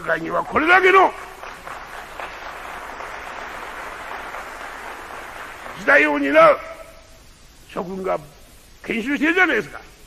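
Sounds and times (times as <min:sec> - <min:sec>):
audience applause: 0:00.6 - 0:06.4.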